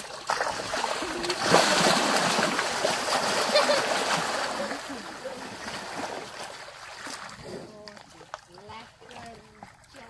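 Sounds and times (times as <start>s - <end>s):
mud and water sloshing: 0.0s - 10.0s.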